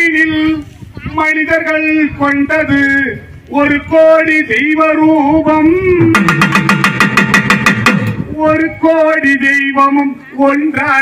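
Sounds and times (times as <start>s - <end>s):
double drum fast strokes: 6.1s - 8.4s.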